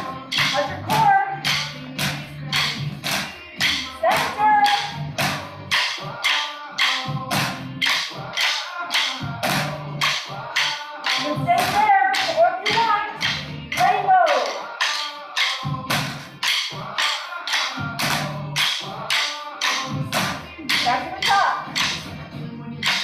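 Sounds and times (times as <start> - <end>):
sharp steady beat: 0.0 - 22.1
person singing: 0.0 - 23.0
upbeat workout music: 0.0 - 23.0.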